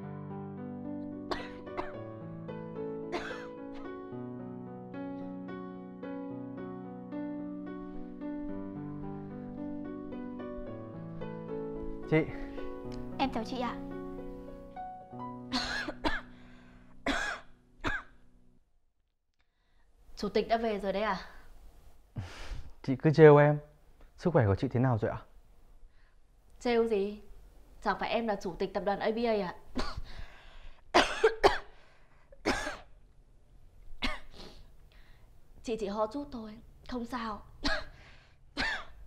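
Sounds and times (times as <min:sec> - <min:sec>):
soft background music: 0:00.0 - 0:18.5
woman coughing: 0:01.3 - 0:02.0, 0:03.1 - 0:03.5, 0:15.5 - 0:16.3, 0:17.0 - 0:18.1, 0:29.8 - 0:30.1, 0:31.0 - 0:31.7, 0:32.4 - 0:32.9, 0:34.0 - 0:34.4, 0:37.6 - 0:38.0, 0:38.6 - 0:39.0.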